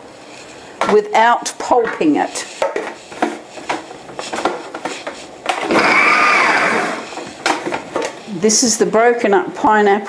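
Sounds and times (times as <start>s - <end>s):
food processor chopping: 5.5s - 7.2s.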